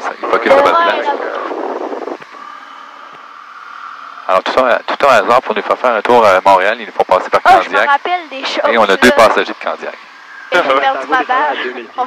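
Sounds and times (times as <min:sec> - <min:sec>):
aircraft engine drone through headset: 0:00.0 - 0:12.0.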